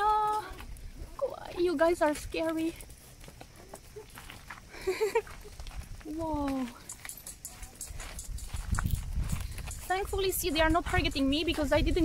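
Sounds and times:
hooves on stone and gravel: 0:00.0 - 0:12.0.

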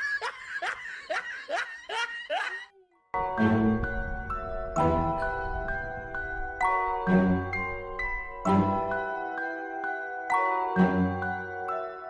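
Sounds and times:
person laughing in short bursts: 0:00.0 - 0:02.7.

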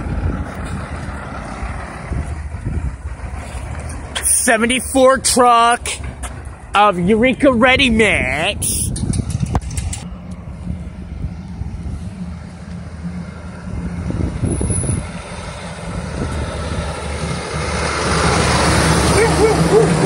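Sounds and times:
pickup truck driving by: 0:00.0 - 0:06.8, 0:10.0 - 0:20.0
diesel truck passing: 0:00.0 - 0:20.0.

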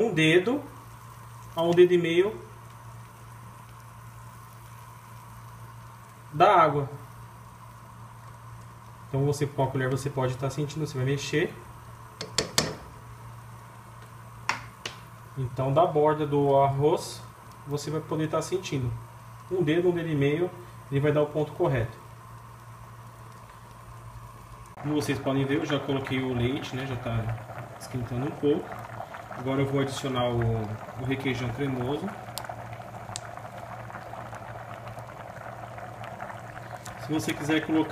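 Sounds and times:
faint low hum: 0:00.0 - 0:37.9
pot boiling hiss: 0:00.0 - 0:37.9
man speaking: 0:15.4 - 0:22.0, 0:24.8 - 0:28.8, 0:29.4 - 0:32.2, 0:37.0 - 0:37.9.

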